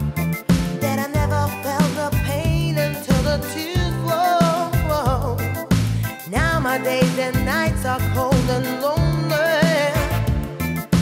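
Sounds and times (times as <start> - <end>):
reggae song with woman singing: 0.0 - 11.0.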